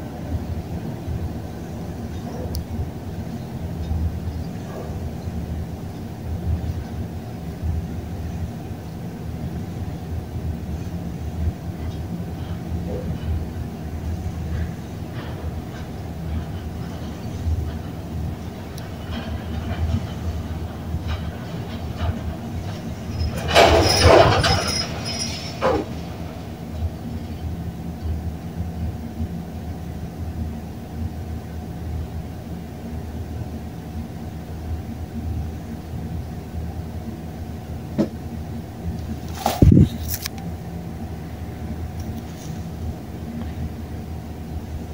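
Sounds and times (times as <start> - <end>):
elevator rushing noise: 0.0 - 30.5, 34.2 - 44.9
elevator rumble and hum: 0.0 - 44.9.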